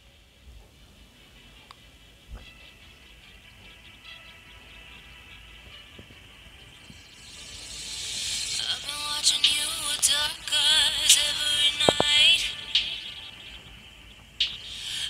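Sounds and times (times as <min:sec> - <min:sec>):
song through tiny earbud speaker: 0:00.1 - 0:15.0.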